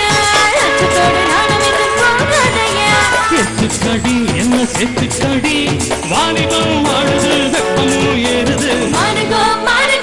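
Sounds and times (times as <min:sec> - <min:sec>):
woman singing: 0:00.0 - 0:03.8, 0:06.4 - 0:10.0
keyboard: 0:00.0 - 0:10.0
percussion: 0:00.0 - 0:10.0.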